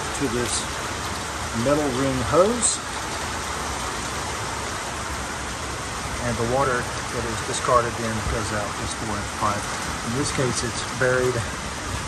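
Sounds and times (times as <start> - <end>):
falling rain: 0.0 - 12.0
rainwater running from a downpipe: 0.0 - 12.0.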